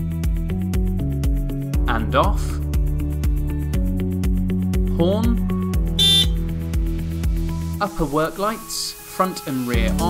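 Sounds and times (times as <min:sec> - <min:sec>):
background music with steady beat: 0:00.0 - 0:10.0
forklift horn beep: 0:06.0 - 0:06.4.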